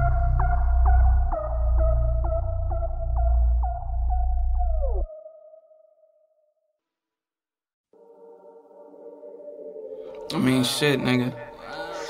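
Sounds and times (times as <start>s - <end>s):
deep bass beat: 0.0s - 5.1s.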